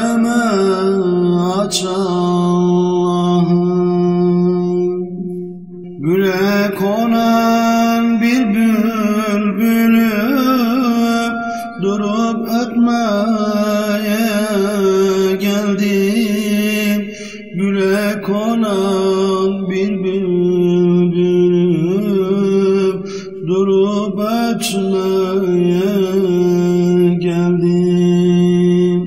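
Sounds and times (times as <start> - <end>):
hummed vocal drone: 0.0 - 29.0
person singing unaccompanied: 5.8 - 29.0
short breath: 11.4 - 11.8, 17.1 - 17.5, 23.0 - 23.4.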